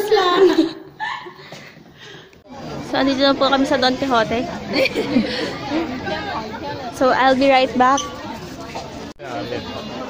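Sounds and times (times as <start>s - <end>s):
many voices chattering: 1.8s - 10.0s.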